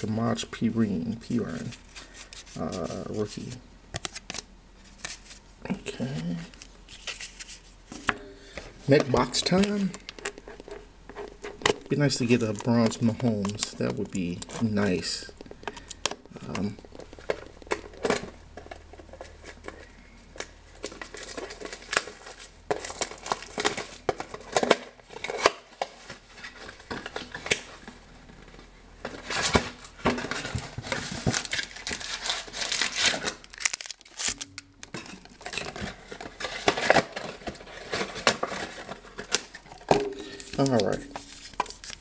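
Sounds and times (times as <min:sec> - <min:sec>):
foil packs rustling: 0:04.8 - 0:42.0
plastic wrapping crinkling and tearing: 0:08.9 - 0:28.0, 0:29.1 - 0:42.0.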